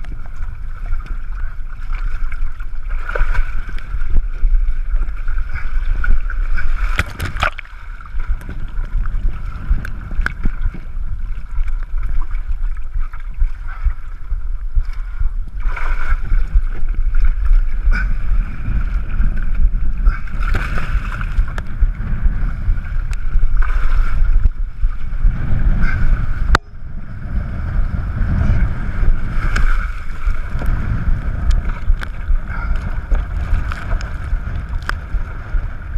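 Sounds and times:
water splashing and sloshing: 0:00.0 - 0:35.9
wind buffeting microphone: 0:00.0 - 0:35.9.

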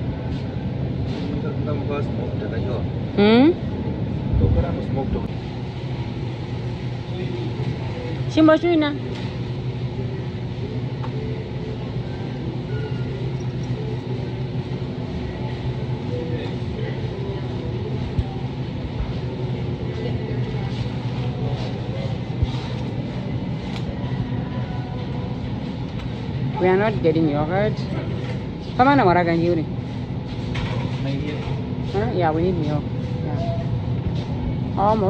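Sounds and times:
refrigeration and ventilation hum: 0:00.0 - 0:35.0.

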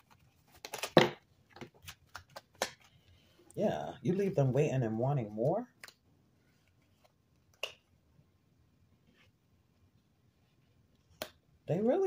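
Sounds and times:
playing cards snapping: 0:01.9 - 0:02.9.

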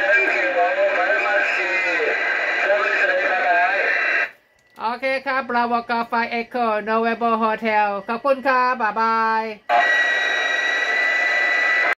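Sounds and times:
radio receiver hiss: 0:00.0 - 0:04.4, 0:09.7 - 0:12.0
high steady whistle: 0:09.6 - 0:12.0.

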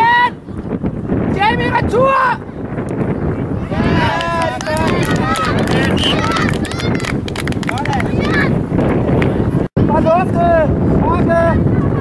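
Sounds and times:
wind on microphone: 0:00.0 - 0:12.0
children shouting: 0:03.8 - 0:07.2.

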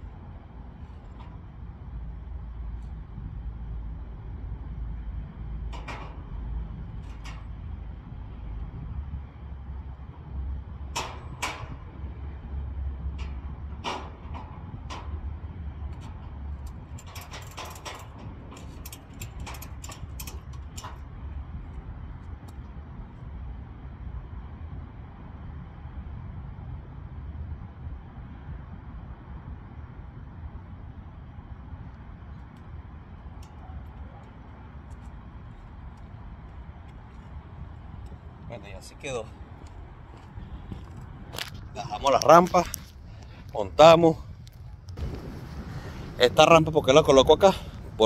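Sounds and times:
low rumble: 0:00.0 - 0:48.0
metal clanks and clicks: 0:05.7 - 0:06.3, 0:07.0 - 0:07.6, 0:10.9 - 0:11.9, 0:13.2 - 0:15.3, 0:15.9 - 0:21.1.

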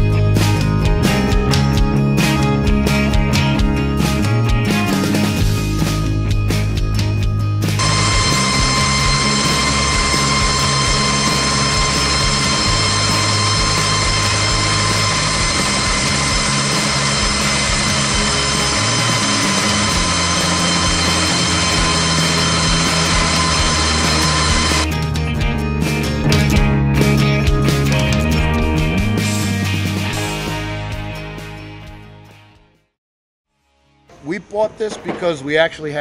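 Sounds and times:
rock music: 0:00.0 - 0:32.8
high whine of wire saw cutting: 0:07.8 - 0:24.9.

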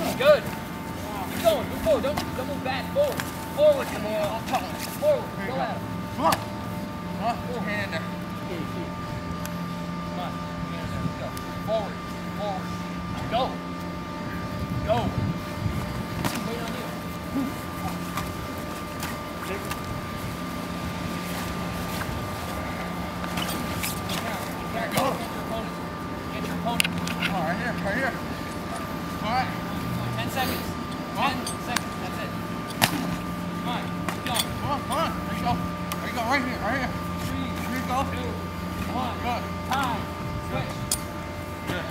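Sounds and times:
men shouting: 0:00.0 - 0:06.6
steady drone: 0:00.0 - 0:41.9
steady low hum: 0:00.0 - 0:41.9.

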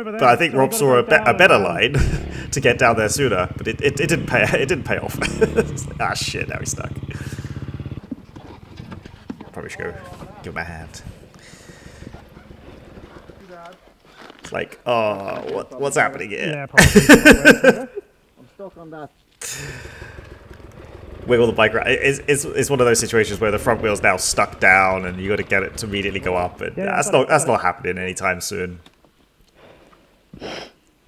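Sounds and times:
dirt bike engine idling: 0:00.9 - 0:13.5, 0:19.4 - 0:28.2.

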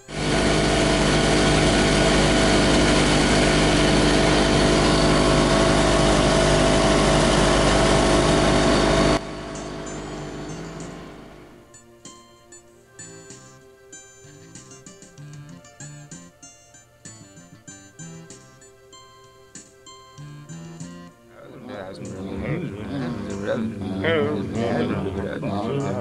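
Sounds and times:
outboard motor running: 0:00.0 - 0:11.6.

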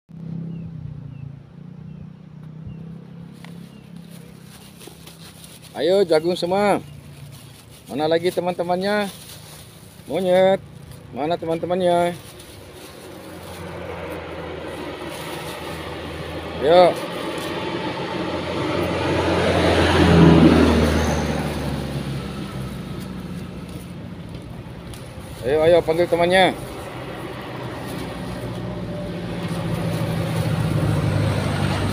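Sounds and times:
truck driving past: 0:00.1 - 0:31.9
engine idling: 0:03.4 - 0:31.9.

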